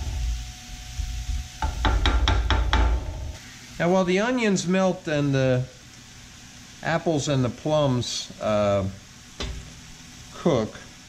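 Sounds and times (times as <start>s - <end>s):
onions sizzling in oil: 0.0s - 11.0s
sharp knocks: 1.6s - 3.2s.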